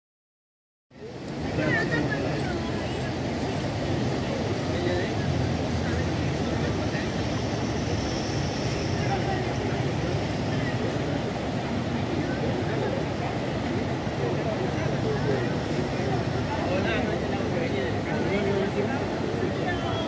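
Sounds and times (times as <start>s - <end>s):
flooded river rushing: 1.0s - 20.0s.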